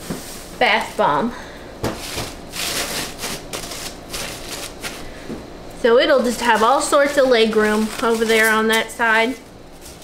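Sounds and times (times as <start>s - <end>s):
paper shred rustling and crackling: 2.0s - 5.1s, 6.2s - 8.9s.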